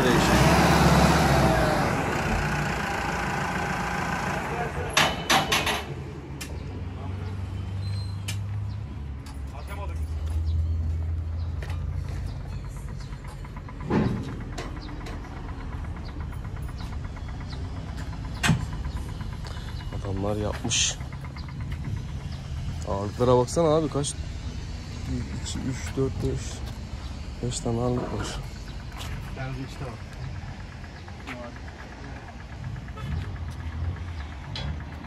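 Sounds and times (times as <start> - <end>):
tractor diesel engine idling: 0.0 - 7.3, 9.5 - 35.0.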